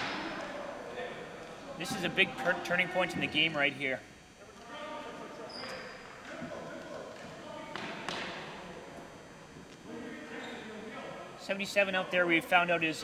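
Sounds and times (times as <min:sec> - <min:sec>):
players' voices echoing in gym: 0:00.0 - 0:13.0.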